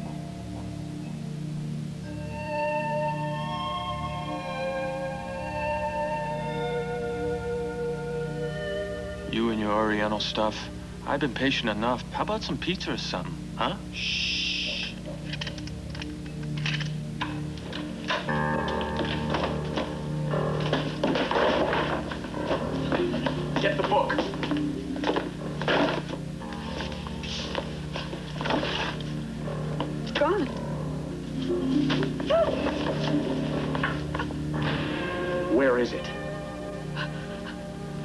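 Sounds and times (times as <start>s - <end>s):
drama soundtrack music: 0.0s - 38.0s.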